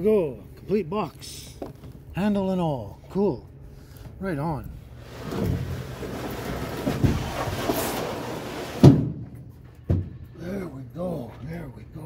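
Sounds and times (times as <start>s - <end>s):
box scraping across steel bed: 5.0s - 9.2s.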